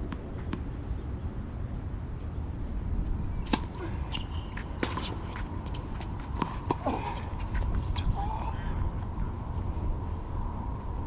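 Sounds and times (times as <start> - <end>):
tennis ball struck by rackets: 3.5 - 5.2.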